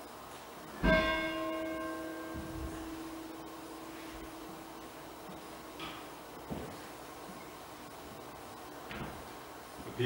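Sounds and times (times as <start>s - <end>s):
church bell ringing: 0.8s - 6.3s
low hum: 0.8s - 8.2s.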